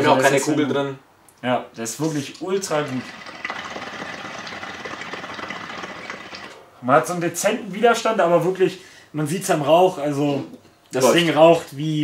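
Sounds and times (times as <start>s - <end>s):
water bubbling in hookahs: 2.0s - 6.6s.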